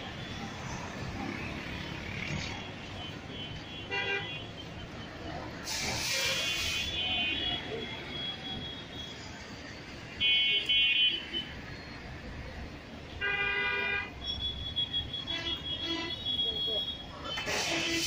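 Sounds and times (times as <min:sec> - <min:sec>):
street traffic background noise: 0:00.0 - 0:18.0
vehicle horns honking: 0:02.9 - 0:05.1, 0:06.0 - 0:09.2, 0:13.2 - 0:18.0
brief hiss: 0:05.6 - 0:07.0, 0:17.4 - 0:18.0.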